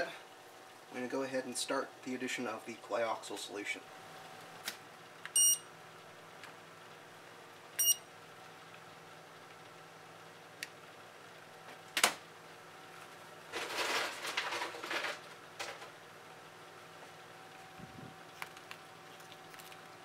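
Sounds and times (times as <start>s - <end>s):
low steady hum: 0.0s - 14.4s, 15.2s - 20.0s
short electronic beeps: 5.4s - 5.7s, 7.8s - 8.1s.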